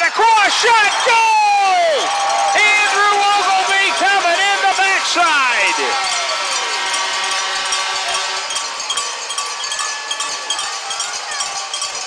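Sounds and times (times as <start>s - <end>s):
crowd noise: 0.0s - 12.0s
steady ringing tones: 0.2s - 12.0s.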